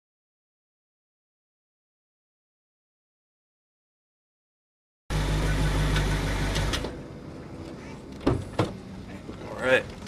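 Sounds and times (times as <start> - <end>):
car engine idling: 5.1 - 10.0.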